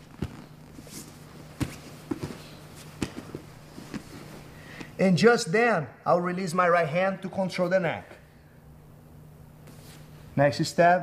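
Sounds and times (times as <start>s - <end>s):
bodies thumping on a mat: 0.0s - 0.8s, 1.5s - 4.2s
low steady hum: 0.0s - 11.0s.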